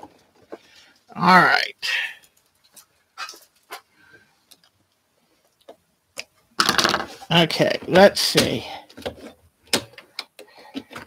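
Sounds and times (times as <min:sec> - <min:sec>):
person speaking: 0:01.1 - 0:02.3, 0:07.0 - 0:08.9.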